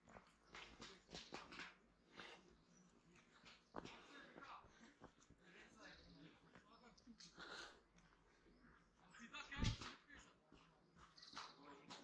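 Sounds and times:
footsteps on dirt trail: 0:08.7 - 0:12.0.

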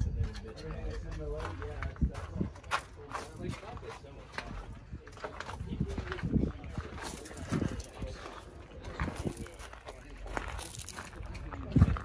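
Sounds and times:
faint voices: 0:00.0 - 0:12.0
footsteps crunching on gravel: 0:01.1 - 0:12.0.

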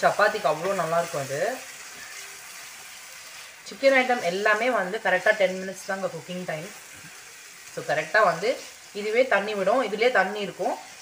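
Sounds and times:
liver sizzling in a pan: 0:00.0 - 0:11.0.

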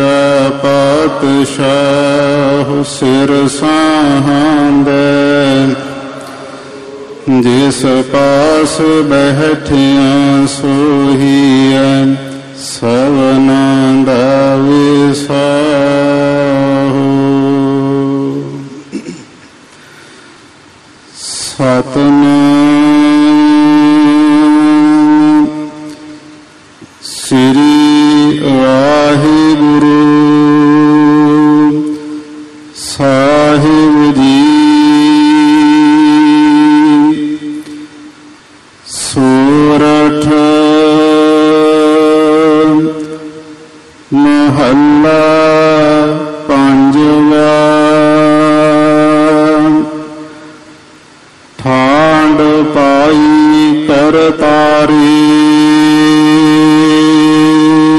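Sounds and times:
man chanting in long held notes: 0:00.0 - 0:19.2, 0:21.0 - 0:57.9.

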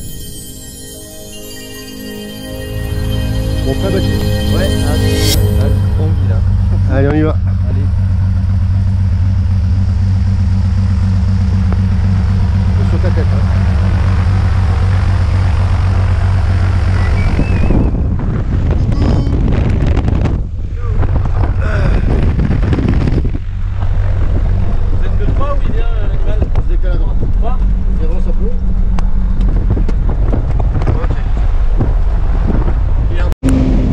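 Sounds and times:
propeller plane engine idling: 0:06.0 - 0:17.4.

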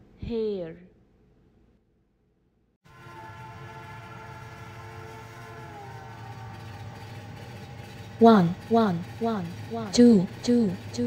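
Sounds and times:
horn-like chord: 0:02.9 - 0:09.7
cartoon train rumble: 0:02.9 - 0:11.0.

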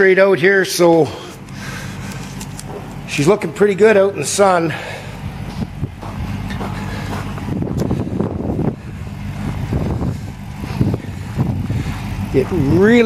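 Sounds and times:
engine idling: 0:00.0 - 0:13.0.

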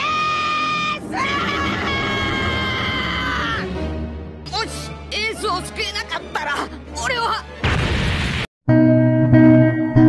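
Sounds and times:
person screaming a long shout: 0:00.0 - 0:03.7.

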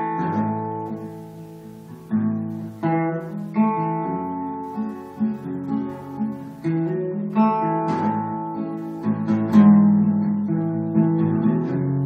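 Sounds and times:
acoustic guitar picking chords: 0:00.0 - 0:12.0.

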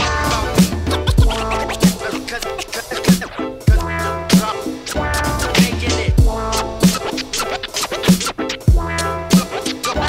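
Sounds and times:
hip hop beat: 0:00.0 - 0:10.0
turntable scratching: 0:00.0 - 0:10.0.

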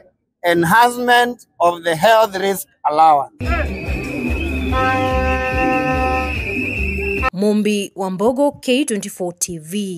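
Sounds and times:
high whistle-like tone: 0:03.4 - 0:07.3
low music beat: 0:03.4 - 0:07.3
vuvuzela long note: 0:03.4 - 0:07.4.

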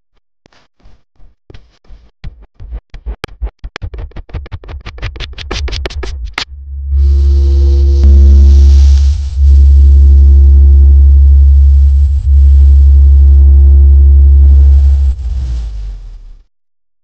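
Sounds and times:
deep sustained bass tone: 0:06.4 - 0:16.4.

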